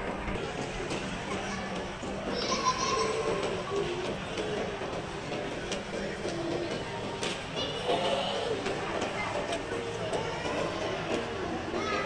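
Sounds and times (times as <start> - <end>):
indistinct voices: 0.0 - 12.0
steady background noise: 0.0 - 12.0.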